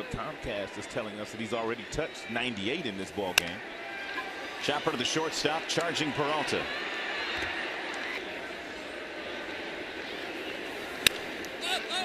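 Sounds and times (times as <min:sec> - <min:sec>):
crowd murmur: 0:03.3 - 0:12.0.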